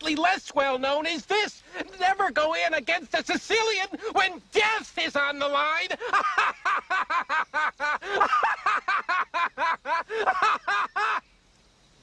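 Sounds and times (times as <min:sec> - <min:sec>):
man laughing loudly: 0:05.9 - 0:11.2.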